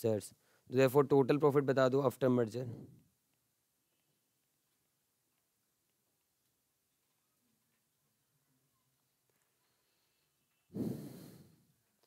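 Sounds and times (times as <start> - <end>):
man breathing close to microphone: 0.4 - 0.7, 9.8 - 11.7.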